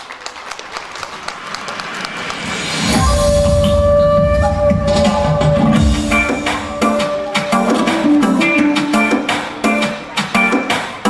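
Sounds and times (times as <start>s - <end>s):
audience clapping: 0.0s - 3.0s
instrumental music with heavy bass: 2.9s - 11.0s.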